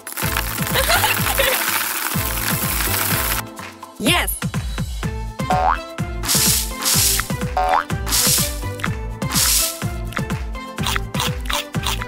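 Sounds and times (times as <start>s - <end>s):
cartoon music with thumping beat: 0.3s - 12.0s
springy boing: 5.5s - 5.8s, 7.6s - 7.9s
bursts of hiss: 6.3s - 7.4s, 8.1s - 9.9s.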